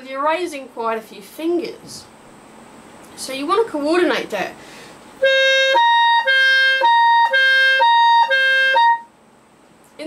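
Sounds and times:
clarinet playing legato: 5.2 - 9.1.

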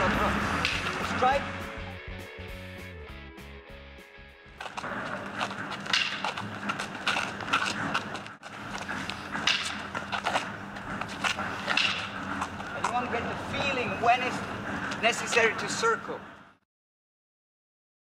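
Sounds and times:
sneakers scuffing on asphalt: 4.6 - 13.8.

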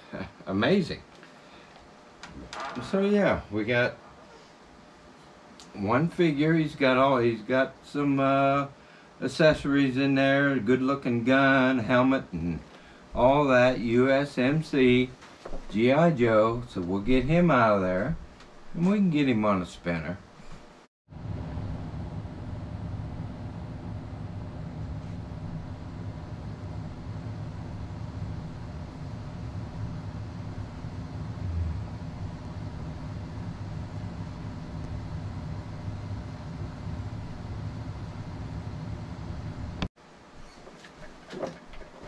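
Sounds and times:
turntable motor hum: 21.1 - 42.0.

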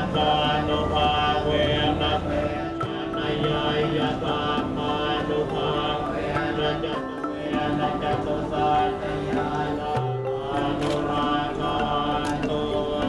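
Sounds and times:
mantra chanting: 0.0 - 13.0
musical accompaniment: 0.0 - 13.0.

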